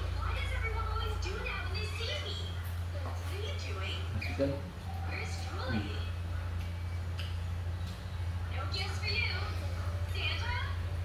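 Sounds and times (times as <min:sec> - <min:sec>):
people talking: 0:00.0 - 0:06.2, 0:08.5 - 0:10.9
steady low hum: 0:00.0 - 0:11.0.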